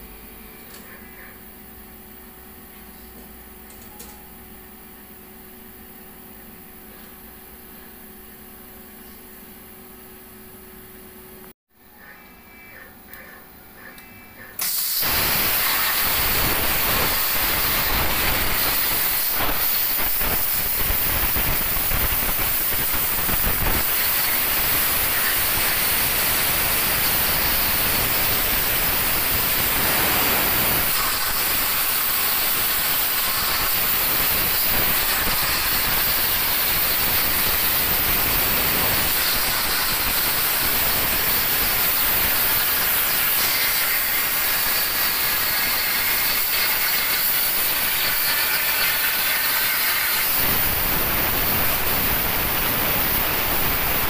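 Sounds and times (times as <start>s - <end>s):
cutting torch hissing: 14.6s - 54.0s.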